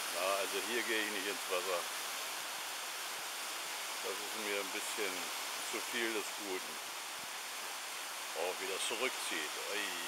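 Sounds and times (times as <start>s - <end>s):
surf surging over rocky shore: 0.0s - 10.0s.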